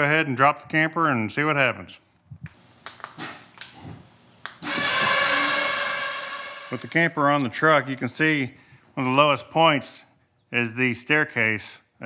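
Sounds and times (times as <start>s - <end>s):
electric jack motors whining: 4.6s - 7.0s.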